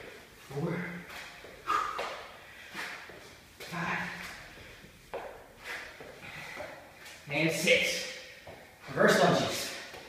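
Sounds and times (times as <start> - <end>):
hard breathing: 0.6 - 7.2.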